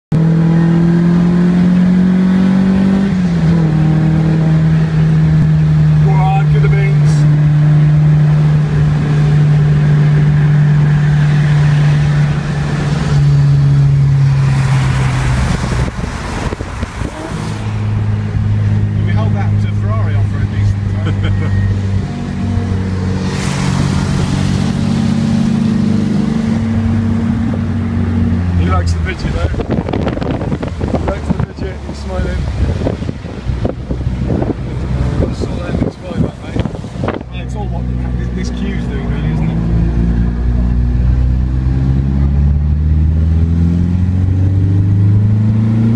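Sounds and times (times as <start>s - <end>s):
car engine running: 0.1s - 45.9s.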